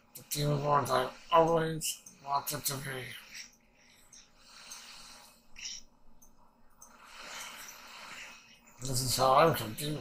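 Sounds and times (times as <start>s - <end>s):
faint breathing: 0.1s - 5.9s, 6.7s - 8.8s.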